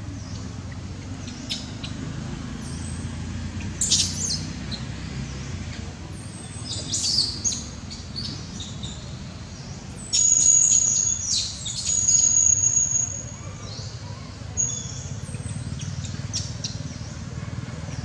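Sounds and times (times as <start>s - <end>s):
birds chirping: 0.0s - 18.0s.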